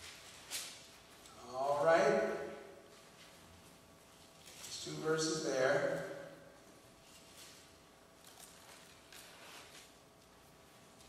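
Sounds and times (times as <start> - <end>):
paper pages being turned: 7.0 - 10.0.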